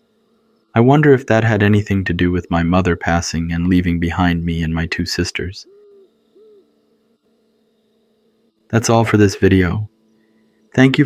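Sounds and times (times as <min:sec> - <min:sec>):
owl hooting: 0:00.0 - 0:07.2.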